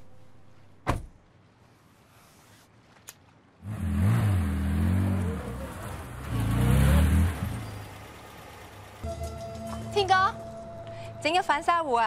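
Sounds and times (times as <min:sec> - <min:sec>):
car engine revving: 0:03.6 - 0:09.0.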